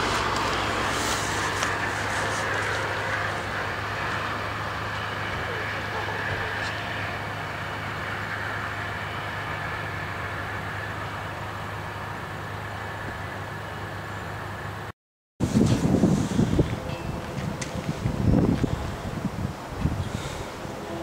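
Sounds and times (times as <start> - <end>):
train rumble and rail noise: 0.0 - 21.0.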